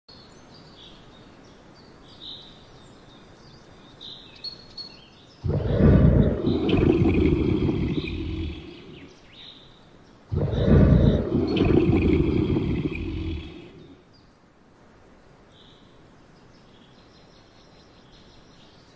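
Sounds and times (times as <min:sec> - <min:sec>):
faint birds chirping: 0:00.1 - 0:14.5
lion roaring: 0:05.5 - 0:09.1, 0:10.3 - 0:14.0.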